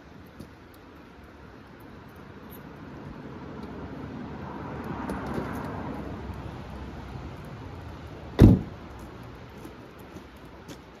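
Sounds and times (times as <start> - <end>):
car door shutting: 8.4 - 8.8.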